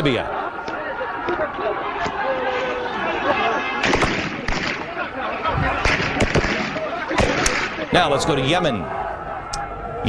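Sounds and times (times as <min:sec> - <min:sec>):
people shouting: 0:00.0 - 0:10.0
gunshot cracks: 0:03.8 - 0:04.9, 0:05.8 - 0:07.8.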